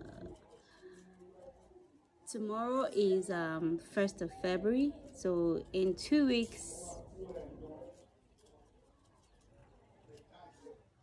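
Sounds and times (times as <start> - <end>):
woman speaking: 0.0 - 0.4, 2.3 - 7.0.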